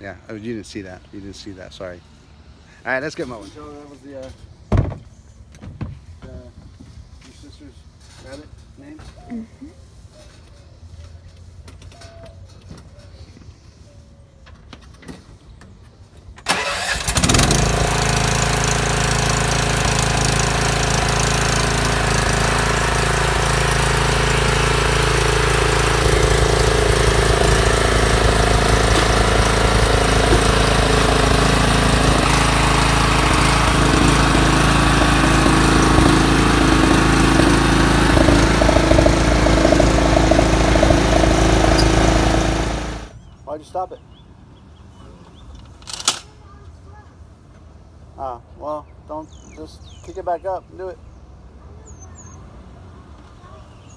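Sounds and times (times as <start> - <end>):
mower engine running: 16.5 - 43.2.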